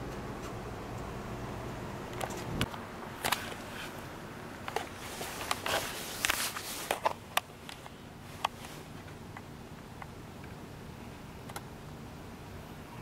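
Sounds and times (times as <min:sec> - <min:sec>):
camera handling clicks and rustles: 0:02.2 - 0:03.6, 0:04.6 - 0:09.2.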